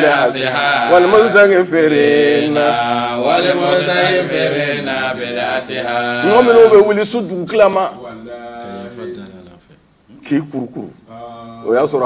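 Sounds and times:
men chanting a religious refrain: 0.0s - 9.6s, 10.9s - 12.0s.

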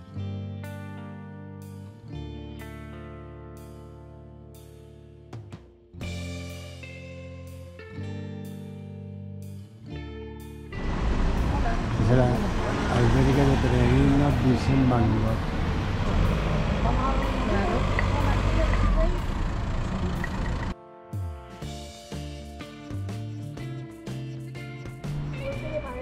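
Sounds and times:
background music: 0.0s - 19.3s, 20.2s - 26.0s
traffic rumble: 10.8s - 20.8s
indistinct voices: 11.4s - 20.7s.

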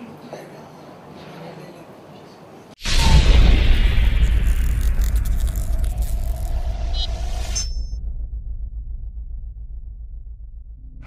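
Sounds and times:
deep heavy rumble: 2.8s - 11.0s.

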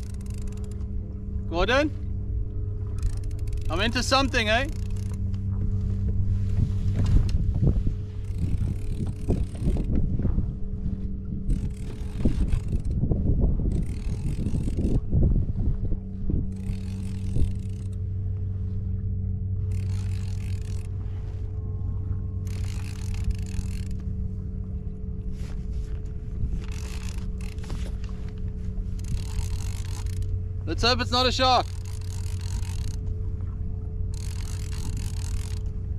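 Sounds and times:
fishing reel being cranked: 0.0s - 0.9s, 2.8s - 5.3s, 7.2s - 10.0s, 11.4s - 13.0s, 13.6s - 15.1s, 16.5s - 18.1s, 19.6s - 21.0s, 22.4s - 24.4s, 25.4s - 33.2s, 34.0s - 35.9s
steady low hum: 0.0s - 35.9s.

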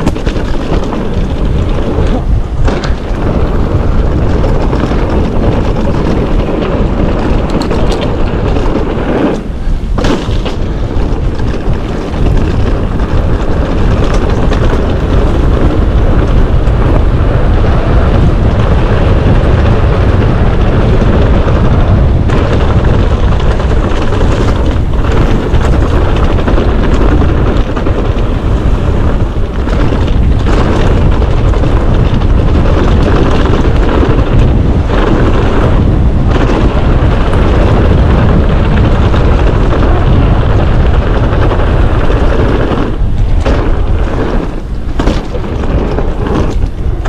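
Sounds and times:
tyres rumbling over trail: 0.0s - 47.0s
wind buffeting microphone: 0.0s - 47.0s.

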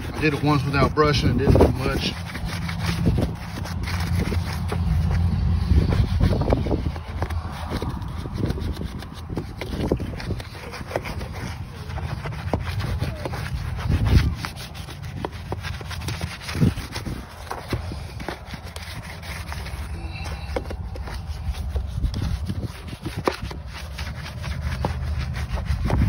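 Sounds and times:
brush scrubbing a wheel: 0.0s - 26.0s.

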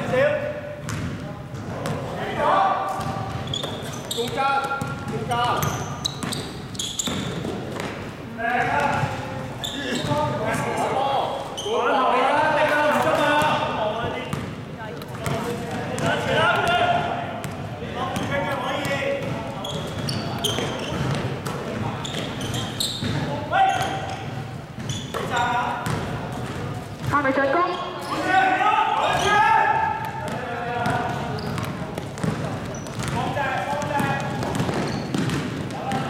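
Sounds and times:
basketball dribbling on court: 3.0s - 8.0s, 23.8s - 27.2s, 30.2s - 36.0s.

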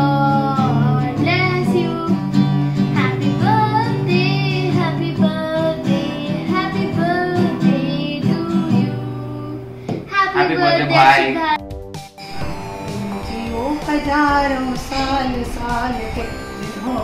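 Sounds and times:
acoustic guitar strumming: 0.0s - 9.7s, 12.1s - 17.0s
girl singing: 0.0s - 11.0s.

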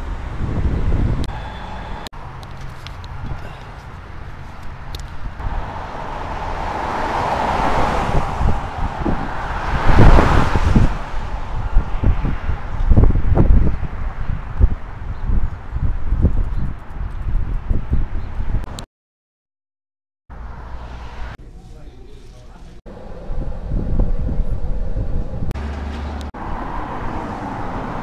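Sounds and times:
wind buffeting microphone: 0.0s - 18.8s, 22.9s - 25.6s
vehicle passing by: 4.0s - 13.4s, 20.3s - 21.4s, 22.9s - 28.0s.

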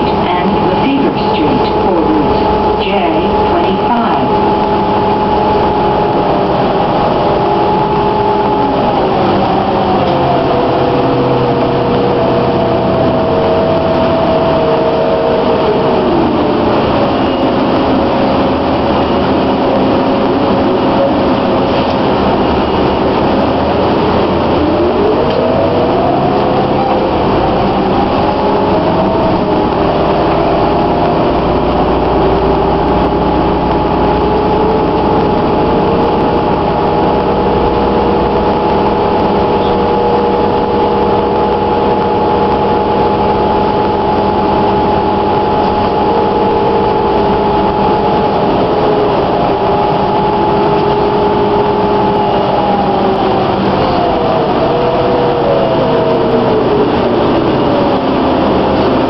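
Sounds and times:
bus drive whine: 0.0s - 59.0s
diesel engine running: 0.0s - 59.0s.

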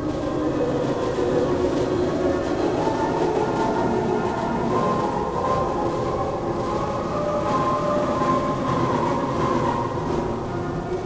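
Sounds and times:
ambient music drone: 0.0s - 11.0s.

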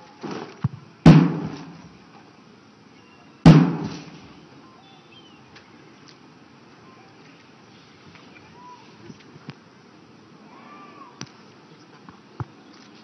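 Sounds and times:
sharp loud echoing thuds: 1.0s - 1.8s, 3.5s - 4.2s.

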